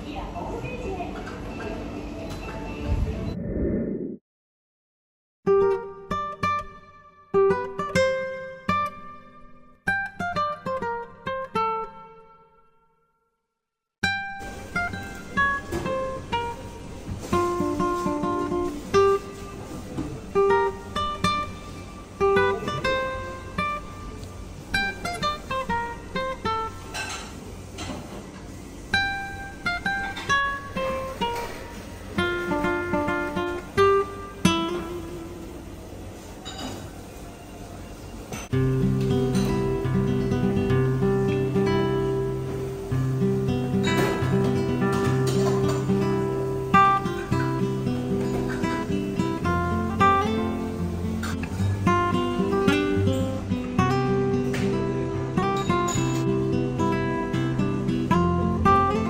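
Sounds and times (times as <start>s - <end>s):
acoustic guitar music: 5.5s - 12.9s, 14.0s - 27.8s, 28.5s - 59.0s.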